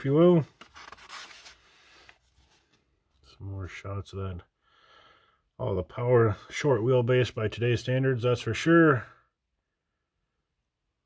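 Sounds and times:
magazine pages rustling: 0.0 - 2.9.

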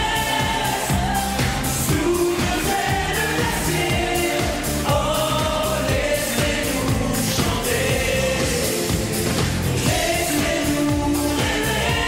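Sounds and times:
band with steady beat: 0.0 - 12.0
singers singing pop song in chorus: 0.0 - 12.0.

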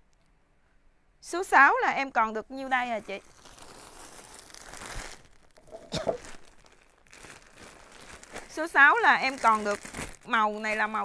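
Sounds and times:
plastic garment bags crinkling: 2.6 - 11.0.

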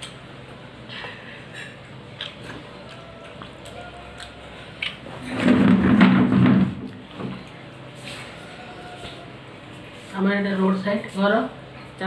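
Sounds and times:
faint eating sounds: 0.0 - 5.8, 6.7 - 12.0.

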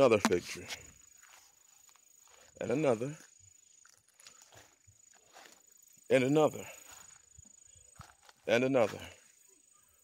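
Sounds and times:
footsteps on dry grass: 0.0 - 9.4.

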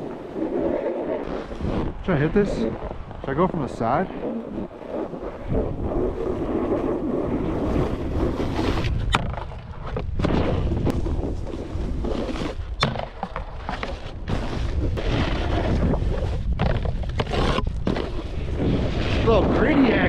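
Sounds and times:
snowboard edges scraping snow: 0.0 - 12.8, 13.4 - 20.0
wind on microphone: 0.0 - 20.0.

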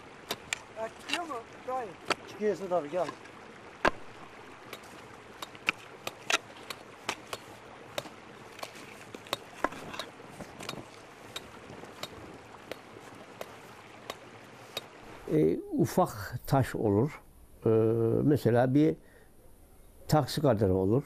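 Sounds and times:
pickaxe striking stony earth: 4.7 - 14.2.

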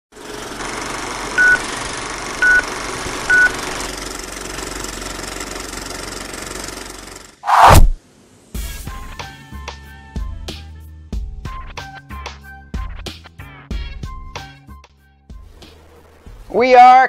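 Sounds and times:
film projector whirring and rattling: 0.1 - 7.4
loud whoosh: 7.5 - 8.0.

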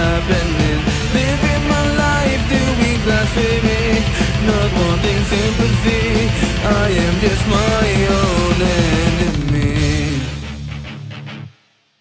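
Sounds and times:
drums playing: 0.0 - 11.0
distorted guitars: 0.0 - 12.0.

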